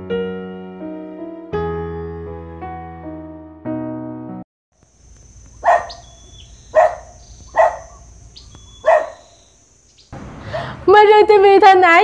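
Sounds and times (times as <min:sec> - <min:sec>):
piano music: 0:00.0 - 0:04.4
dog barking: 0:05.6 - 0:08.1, 0:08.7 - 0:09.4.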